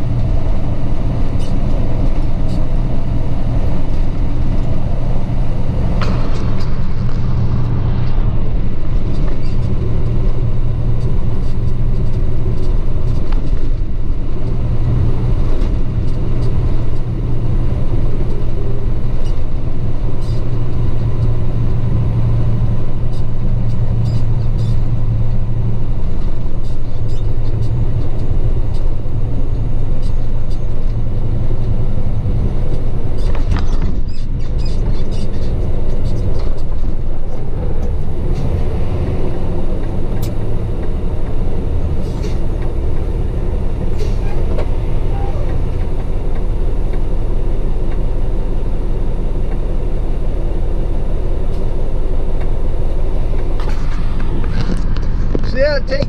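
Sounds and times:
road noise: 0.0 - 56.0
truck engine droning: 0.0 - 56.0.

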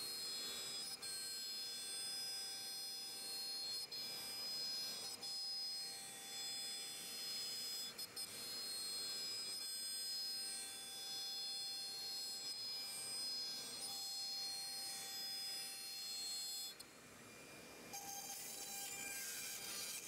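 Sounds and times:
router spindle whining milling wood: 0.0 - 20.0.

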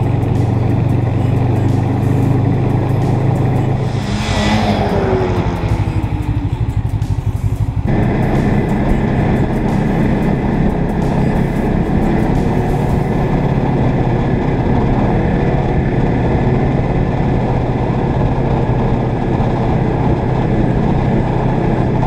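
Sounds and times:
snowmobile engine running: 0.0 - 22.0.

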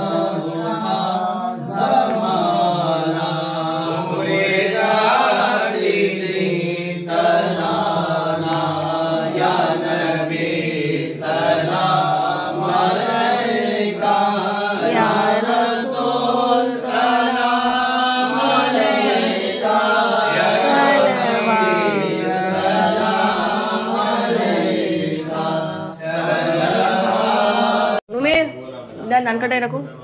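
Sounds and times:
men chanting together: 0.0 - 28.1.

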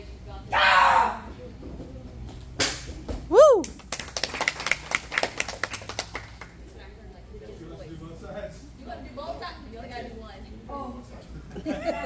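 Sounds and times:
people clapping: 3.4 - 6.6.

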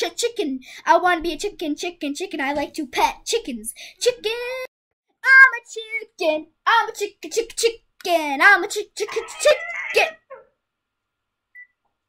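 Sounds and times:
child shouting: 9.0 - 10.3.

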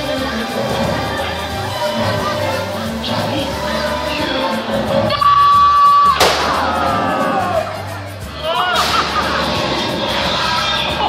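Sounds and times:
show music: 0.0 - 11.0
sharp bang: 6.2 - 6.7.

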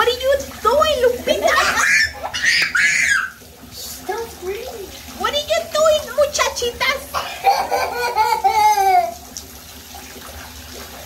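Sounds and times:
bath water sloshing: 0.0 - 11.0
girls squealing and laughing: 1.5 - 3.4.

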